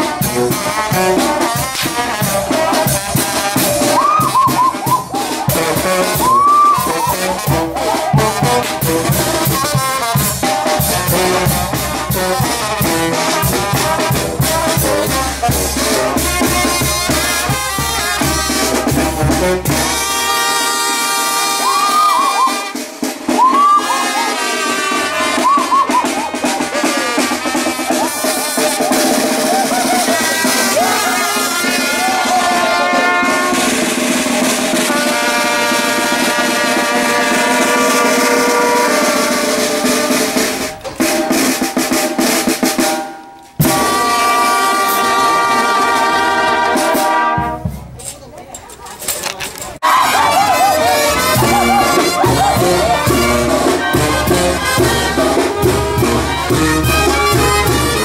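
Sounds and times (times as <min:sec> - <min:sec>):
bass drum: 0:00.0 - 0:20.2, 0:49.9 - 0:58.0
snare drum: 0:00.0 - 0:48.0, 0:49.8 - 0:58.0
trumpets playing a melody: 0:00.0 - 0:48.1, 0:49.8 - 0:58.0
sousaphone: 0:01.8 - 0:08.2, 0:49.8 - 0:55.2.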